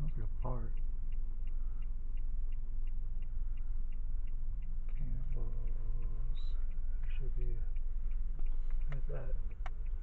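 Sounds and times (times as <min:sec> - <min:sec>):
car rolling rumble: 0:00.0 - 0:10.0
car turn signal ticking: 0:00.0 - 0:10.0.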